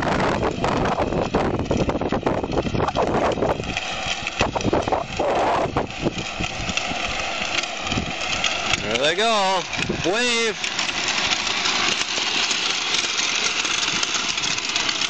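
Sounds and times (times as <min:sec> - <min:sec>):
constant rushing noise: 0:00.0 - 0:15.0
plastic wheels rolling on concrete: 0:00.0 - 0:15.0
toy car electric motor whining: 0:00.0 - 0:15.0.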